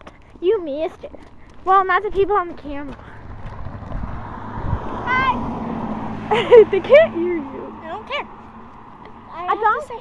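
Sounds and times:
wind rumbling on microphone: 0:02.0 - 0:07.6.

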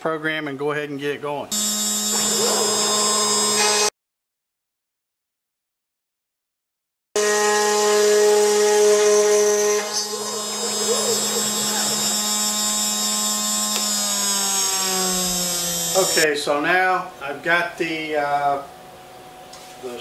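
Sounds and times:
router spindle whine: 0:01.5 - 0:03.9, 0:07.2 - 0:16.3.

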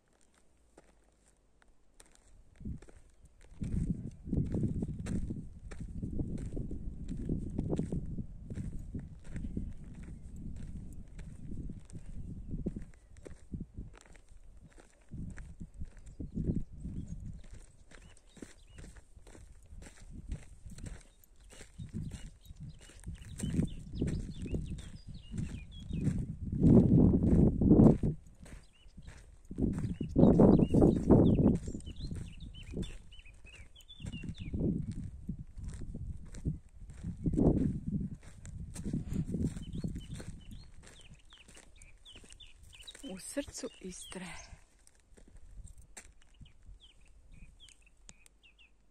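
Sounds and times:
footsteps on dry clay: 0:00.0 - 0:48.4
wind buffeting microphone: 0:02.5 - 0:44.6, 0:45.2 - 0:47.7
faint bird chirps: 0:20.9 - 0:26.2, 0:39.5 - 0:44.2, 0:46.2 - 0:48.8.

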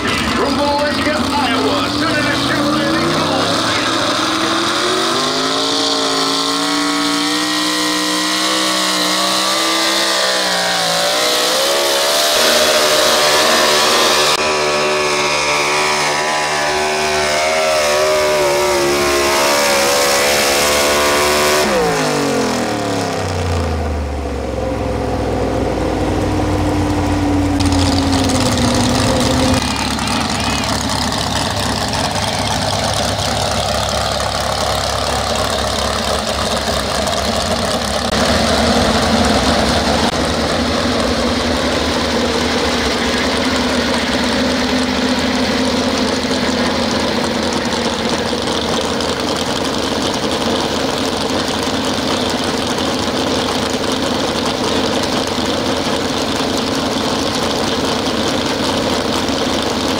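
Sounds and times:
engines idling: 0:00.0 - 0:59.9
truck engine revving under load: 0:00.0 - 0:59.9.

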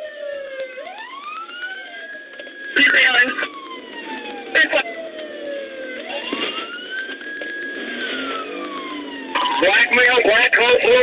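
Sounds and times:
police siren wailing: 0:00.0 - 0:11.0
road noise: 0:00.0 - 0:11.0
car engine: 0:02.9 - 0:11.0.

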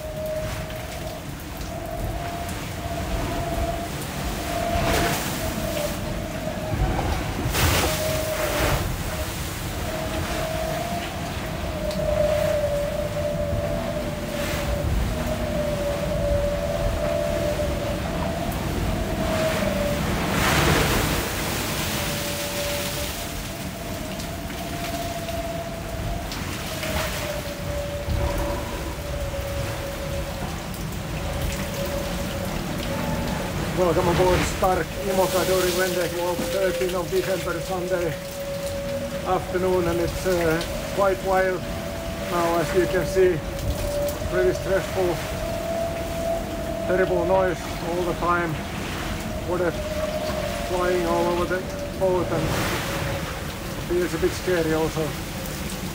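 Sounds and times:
steady wavering whine: 0:00.0 - 0:55.9
water and wind rushing around hull: 0:00.0 - 0:55.9.

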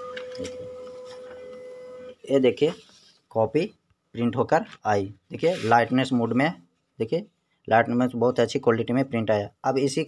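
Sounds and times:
laser printer motor whine: 0:00.0 - 0:02.2
higher printer tone: 0:00.0 - 0:02.3.

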